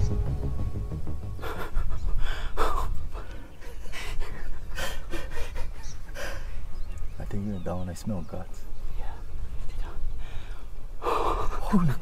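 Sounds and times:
steady low rumble: 0.0s - 3.3s
man breathing hard: 1.4s - 6.6s, 10.2s - 11.7s.

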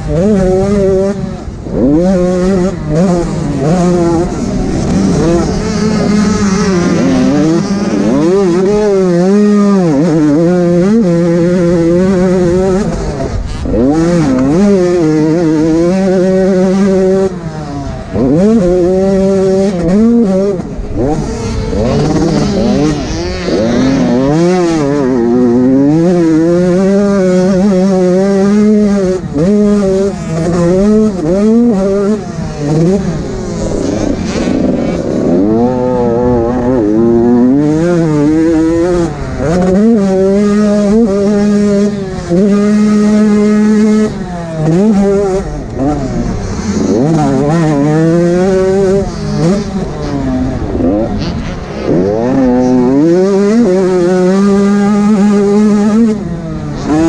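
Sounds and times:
motocross bike engine revving: 0.0s - 57.0s.

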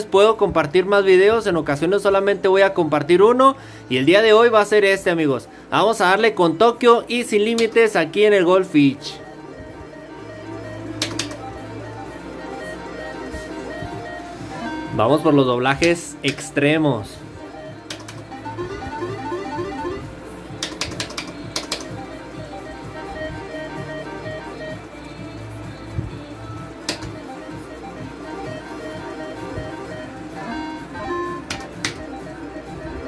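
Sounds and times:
electronic game music: 0.0s - 33.0s
plastic push buttons clicking: 11.0s - 11.4s, 17.9s - 18.2s, 20.6s - 21.9s.

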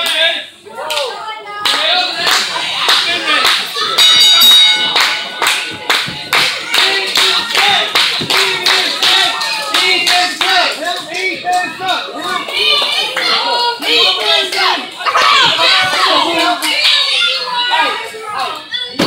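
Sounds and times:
voices shouting: 0.7s - 18.9s
crowd clapping in rhythm: 0.9s - 4.1s, 4.8s - 15.0s
loud high-pitched note: 4.0s - 5.2s.

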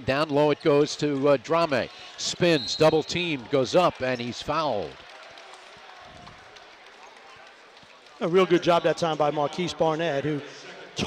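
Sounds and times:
murmur of arena crowd: 0.0s - 11.0s.

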